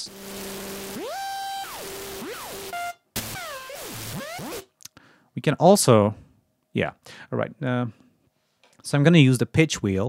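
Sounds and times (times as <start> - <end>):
synthesizer imitating scratched vinyl: 0.0 - 4.7.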